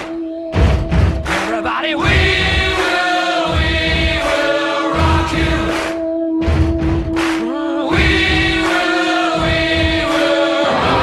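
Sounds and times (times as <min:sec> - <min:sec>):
choir-like singing with held notes: 0:00.0 - 0:11.0.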